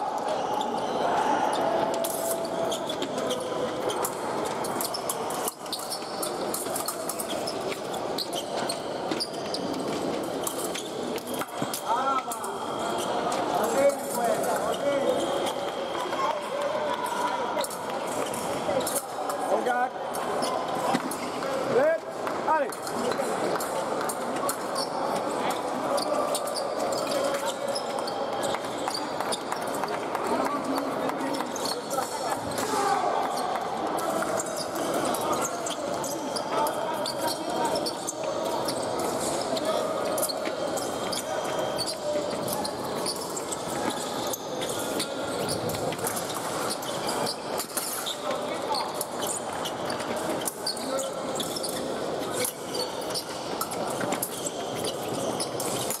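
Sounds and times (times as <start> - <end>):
many indistinct voices: 0.0 - 56.0.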